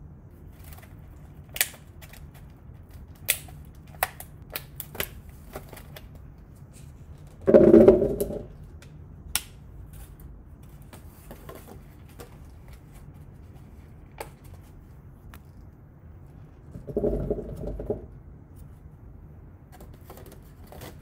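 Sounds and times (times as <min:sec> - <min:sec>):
crackling plastic: 0:00.4 - 0:15.7, 0:19.7 - 0:21.0.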